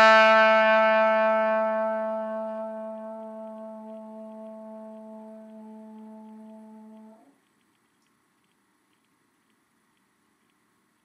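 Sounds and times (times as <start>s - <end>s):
trombone long note: 0.0s - 7.3s.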